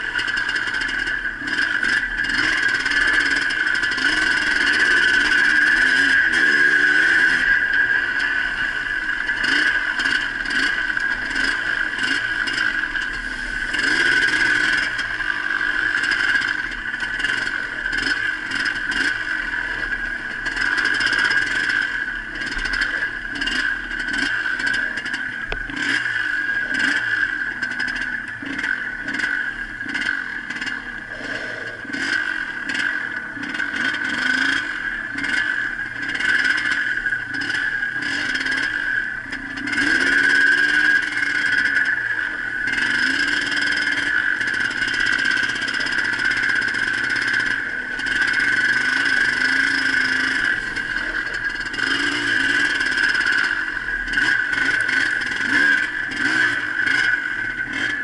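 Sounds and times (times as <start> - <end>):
two-stroke motorcycle engine revving: 0.0 - 58.0.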